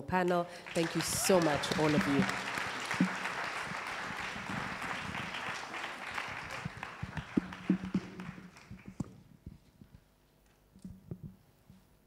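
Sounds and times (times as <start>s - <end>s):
audience applauding: 0.5s - 9.1s.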